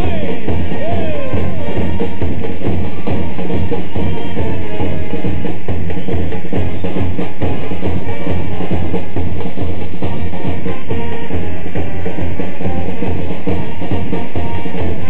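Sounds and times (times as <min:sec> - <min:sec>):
bass drums beating: 0:00.0 - 0:15.0
brass playing: 0:00.0 - 0:15.0.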